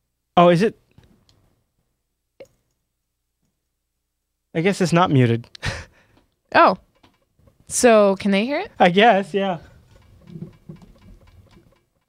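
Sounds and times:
soft hits and ticks: 9.7s - 12.0s.

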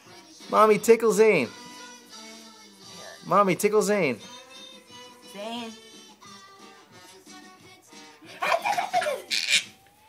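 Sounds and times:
background music: 0.0s - 10.0s
baby squealing laugh: 8.4s - 9.8s.

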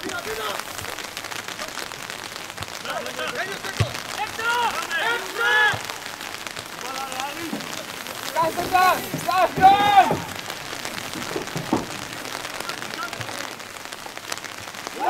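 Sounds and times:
rain hissing: 0.0s - 15.0s
voices calling out: 0.0s - 15.0s.

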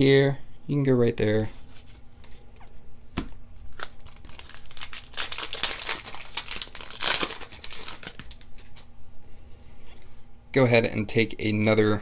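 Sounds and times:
foil wrapper crinkling and tearing: 3.7s - 8.9s.

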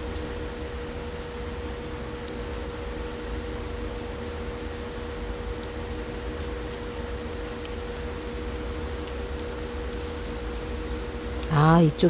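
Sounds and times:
steady background hum: 0.0s - 12.0s
tweezers clicking and scratching soil: 6.4s - 10.2s.

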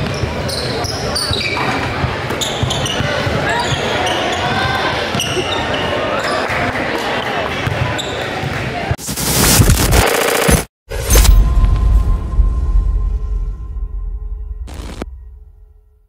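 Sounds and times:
players and spectators voices: 0.0s - 9.0s
loud whooshing effect: 9.0s - 10.0s.

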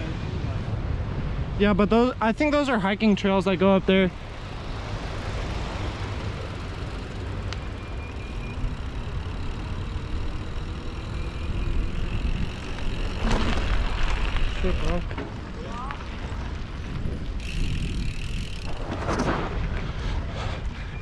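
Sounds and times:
bike rolling noise: 0.2s - 21.0s
wind rushing over microphone: 16.0s - 21.0s.

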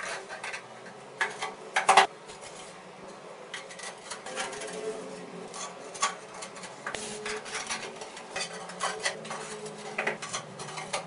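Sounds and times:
ceramic tiles clinking and scraping: 3.5s - 11.0s.

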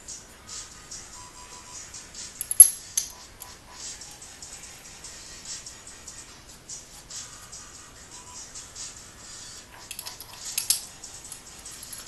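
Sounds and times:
quiet background music: 0.0s - 12.0s
metal parts clinking: 2.4s - 3.2s, 9.9s - 12.0s.

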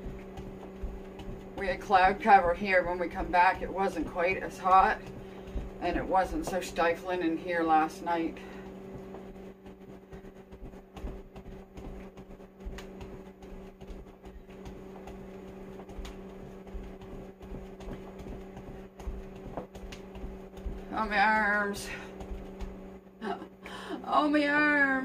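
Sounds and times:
faint thumps and rustles: 0.0s - 23.0s
household appliance humming: 0.0s - 25.0s.

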